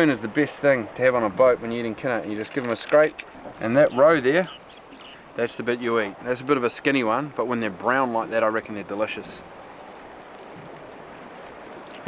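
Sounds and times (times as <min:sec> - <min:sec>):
wind over open water: 0:00.0 - 0:12.0.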